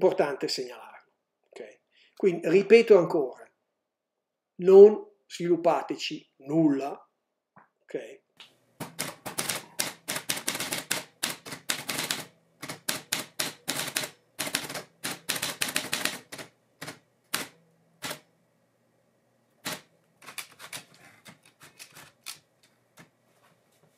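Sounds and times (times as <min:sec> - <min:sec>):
manual typewriter typing: 0:08.8 - 0:18.2, 0:19.6 - 0:22.4.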